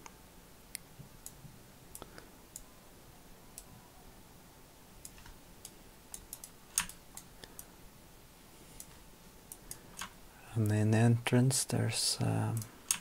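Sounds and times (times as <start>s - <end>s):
computer mouse clicking: 5.0s - 7.7s, 8.8s - 10.8s, 12.5s - 13.0s.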